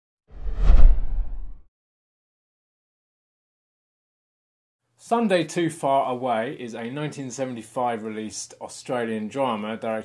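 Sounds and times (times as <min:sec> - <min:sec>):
whoosh: 0:00.3 - 0:01.6.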